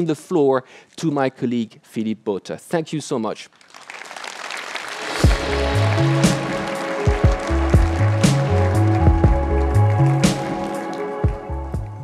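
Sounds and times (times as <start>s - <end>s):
music with drum beat and bass: 5.2s - 12.0s.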